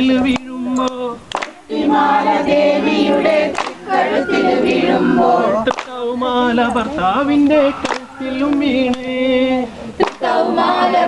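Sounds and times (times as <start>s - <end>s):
group singing folk song in chorus: 0.0s - 11.0s
sharp hand claps: 0.3s - 1.6s, 3.5s - 3.8s, 5.7s - 6.0s, 7.8s - 9.1s, 10.0s - 10.3s.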